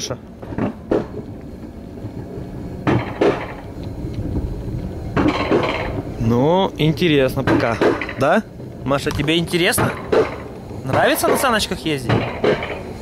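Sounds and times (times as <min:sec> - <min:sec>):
low rumble of coaster sled: 0:00.0 - 0:13.0
metallic clanks of lift mechanism: 0:07.4 - 0:08.4, 0:09.1 - 0:13.0.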